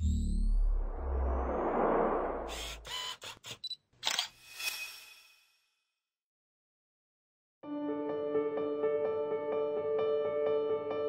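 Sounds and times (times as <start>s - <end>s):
low rumbling swell: 0.0s - 2.5s
camera shutter clicks: 2.9s - 4.3s.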